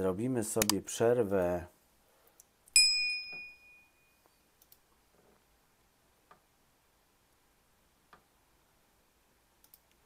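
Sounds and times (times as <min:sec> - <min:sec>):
faint clicks: 0:02.2 - 0:02.8, 0:04.6 - 0:05.0, 0:09.6 - 0:10.0
bright bell ding: 0:02.8 - 0:04.2.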